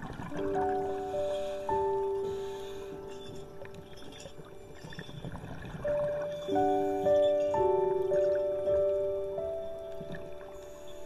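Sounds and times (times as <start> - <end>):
slow soft piano music: 0.0 - 11.0.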